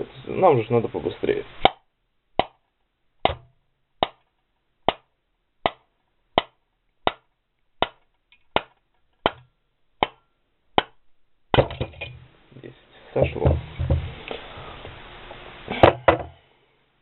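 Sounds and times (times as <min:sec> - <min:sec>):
hammer striking steel rod: 0:03.2 - 0:04.2, 0:08.6 - 0:09.4.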